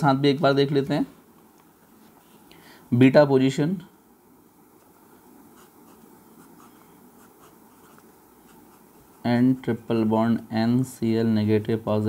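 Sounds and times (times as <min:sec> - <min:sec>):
pen scratching on paper: 0:05.6 - 0:09.3.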